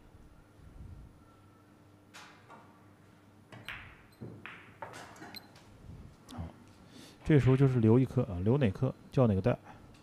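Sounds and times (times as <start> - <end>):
cue striking ball: 3.6 - 5.2.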